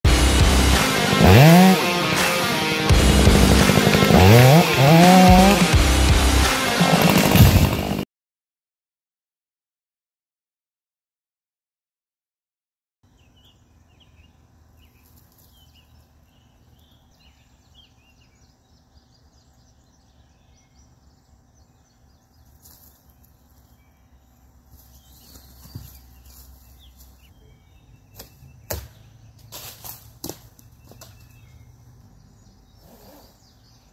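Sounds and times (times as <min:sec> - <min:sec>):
chainsaw cutting wood: 0:00.1 - 0:08.0
rock music: 0:00.1 - 0:08.0
faint bird chirps: 0:13.1 - 0:29.6, 0:30.6 - 0:33.9
rustling: 0:14.8 - 0:16.1, 0:22.4 - 0:23.8, 0:24.6 - 0:27.3, 0:29.4 - 0:31.5.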